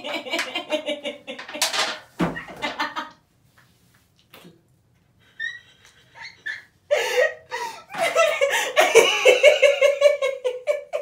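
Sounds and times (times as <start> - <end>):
people laughing: 5.4 - 11.0.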